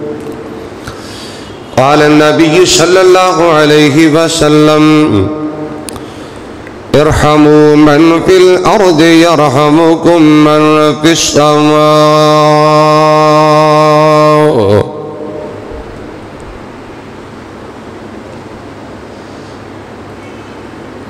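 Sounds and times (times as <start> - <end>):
room noise hiss: 0.0 - 21.0
man chanting: 1.8 - 5.8, 6.9 - 15.8.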